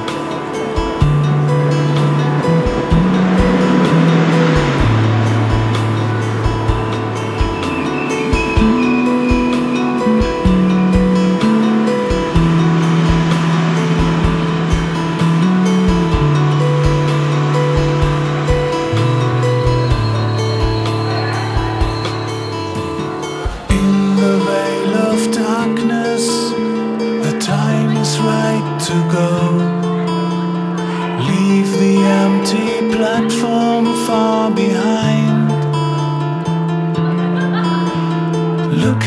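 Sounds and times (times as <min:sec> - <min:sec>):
progressive rock instrumental: 0:00.0 - 0:39.0.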